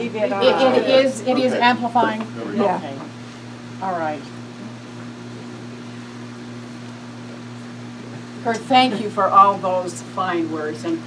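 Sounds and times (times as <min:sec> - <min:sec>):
higher hum tone: 0:00.0 - 0:10.8
low electrical hum: 0:00.0 - 0:11.0.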